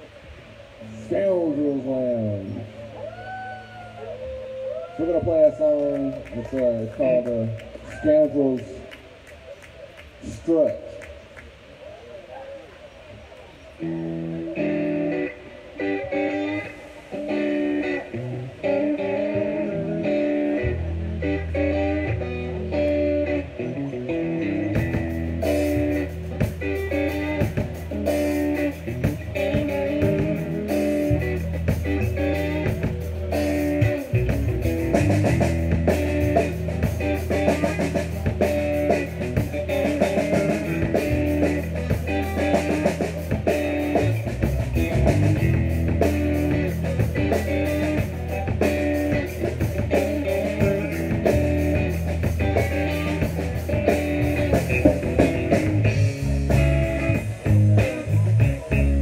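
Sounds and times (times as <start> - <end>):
electric guitar riff: 0.0 - 9.3, 13.7 - 59.0
bass guitar: 13.8 - 59.0
drum kit: 24.5 - 59.0.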